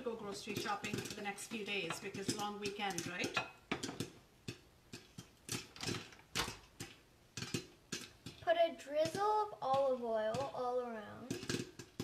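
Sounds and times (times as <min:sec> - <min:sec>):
popcorn popping in a saucepan: 0:00.0 - 0:12.0.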